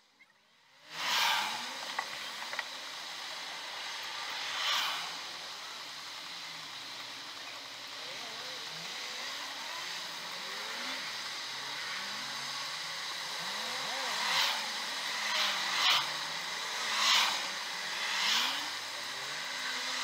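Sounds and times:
cars passing by: 0.0 - 20.0
hum of engines and tyres: 0.0 - 20.0.

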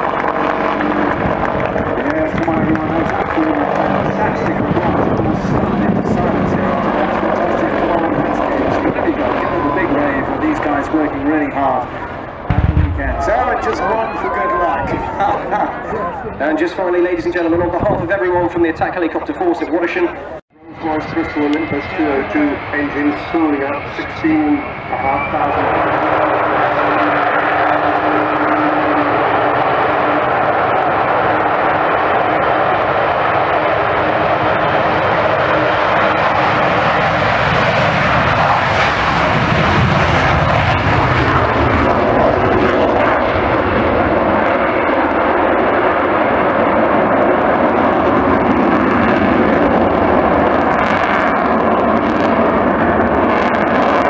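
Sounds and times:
jet engines roaring: 0.0 - 54.0.

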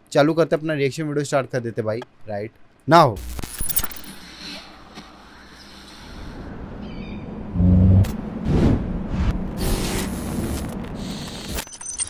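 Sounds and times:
low rumble: 6.3 - 11.1
loud deep bass tone: 7.4 - 9.5.

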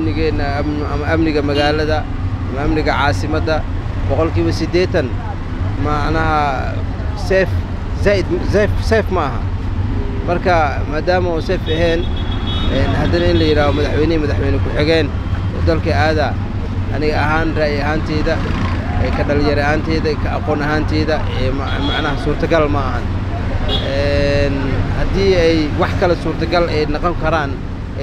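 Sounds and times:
person speaking: 0.0 - 9.5, 12.7 - 23.1
low rumble of street traffic: 0.0 - 28.0
vehicle horn: 11.6 - 13.9, 21.6 - 22.3, 23.7 - 24.0.

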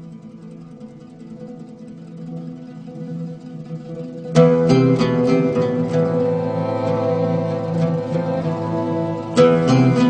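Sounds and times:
plucked oud music: 0.0 - 10.0.

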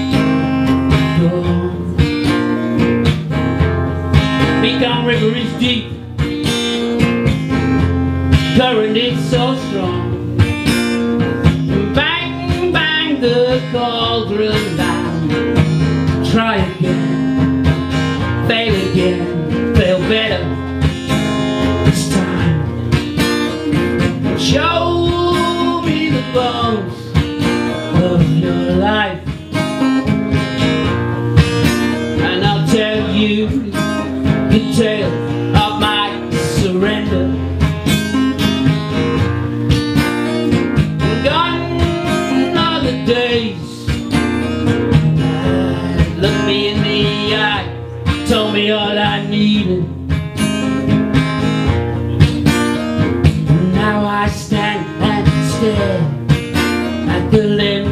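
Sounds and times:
man singing: 0.0 - 30.7, 31.6 - 39.2, 40.1 - 57.9
acoustic guitar strumming: 0.0 - 57.9.

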